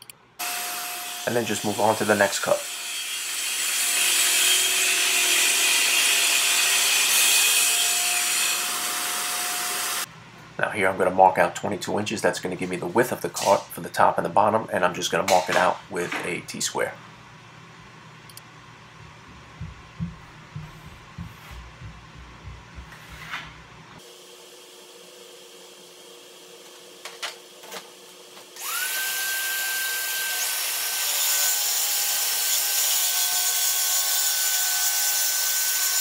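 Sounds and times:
light knocks and scrapes: 22.8 - 23.6
dust extractor humming: 23.7 - 29.8
track saw whining through plywood: 28.6 - 31.8.

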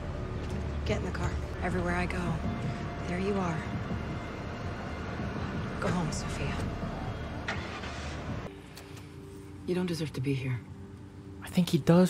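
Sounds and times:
motor vehicle noise: 0.0 - 9.1.

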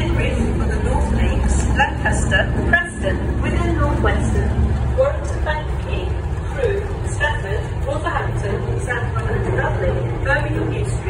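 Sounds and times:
diesel locomotive engine droning: 0.0 - 11.0.

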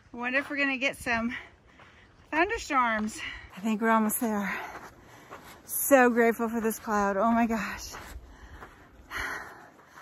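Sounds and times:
heavy noisy breath: 8.1 - 10.0.

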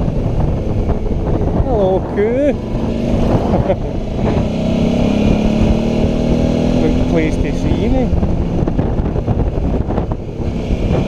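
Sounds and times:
motorcycle engine cruising: 0.0 - 11.0
wind rushing over microphone: 0.0 - 11.0.

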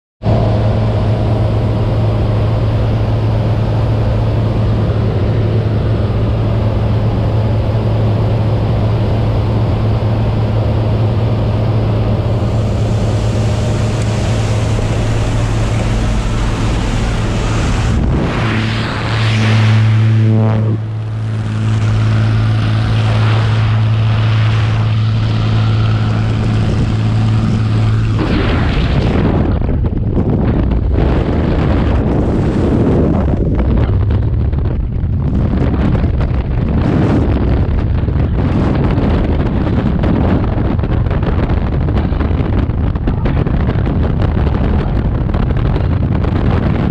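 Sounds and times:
propeller plane engine droning: 0.2 - 46.9
rushing air: 0.2 - 46.9.

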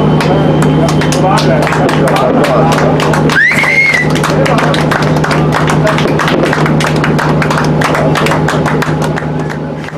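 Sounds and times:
steady low hum: 0.0 - 9.9.

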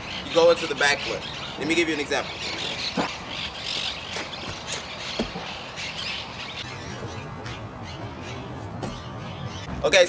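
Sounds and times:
birds chirping and squawking: 0.0 - 10.0
outdoor background noise: 0.0 - 10.0.

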